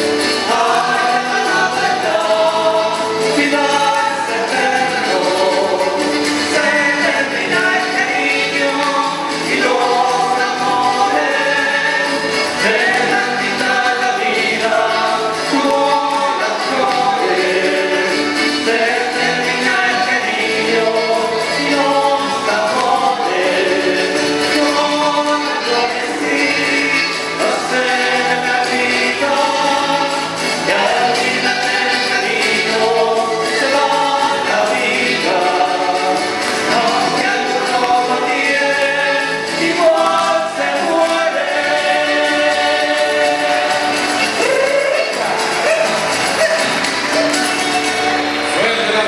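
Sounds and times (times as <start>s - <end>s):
folk instrumental accompaniment: 0.0s - 49.0s
voices singing together: 0.0s - 49.0s.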